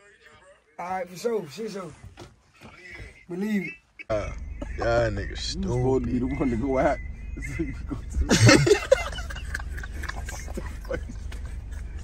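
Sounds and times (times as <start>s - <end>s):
car engine hum inside cabin: 3.0s - 12.0s.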